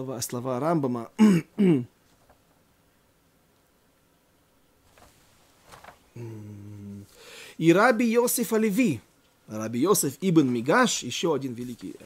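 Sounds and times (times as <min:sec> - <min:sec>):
man clearing his throat: 0:01.2 - 0:01.9.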